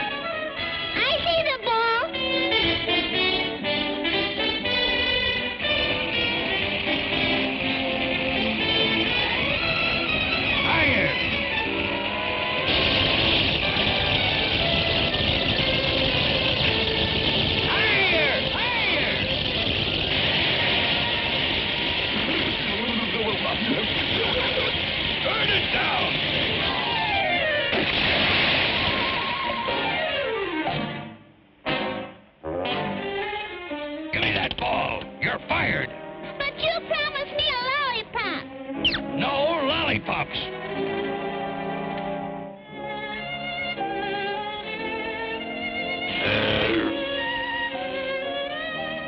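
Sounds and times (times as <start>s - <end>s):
orchestral cartoon music: 0.0s - 49.0s
rushing noise: 12.5s - 29.7s.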